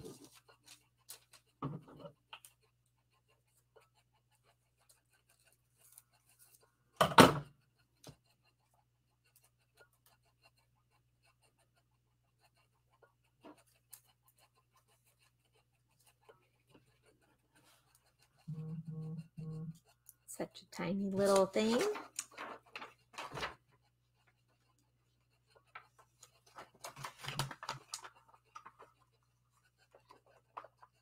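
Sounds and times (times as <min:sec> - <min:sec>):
faint low hum: 0:18.1 - 0:20.8
paper and card handling: 0:21.0 - 0:23.8, 0:25.5 - 0:31.0.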